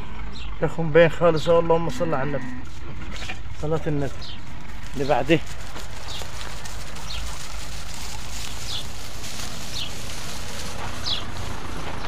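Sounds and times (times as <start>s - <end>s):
high falling chirps: 5.9s - 12.0s.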